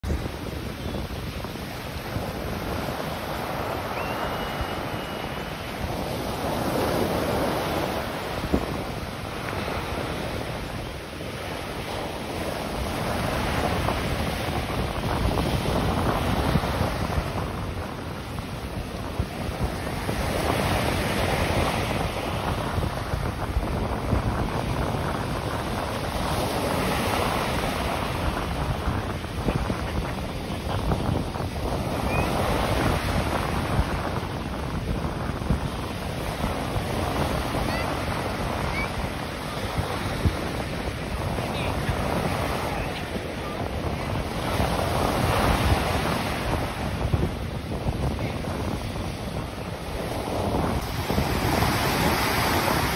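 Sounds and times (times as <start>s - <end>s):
surf breaking on beach: 0.0s - 52.9s.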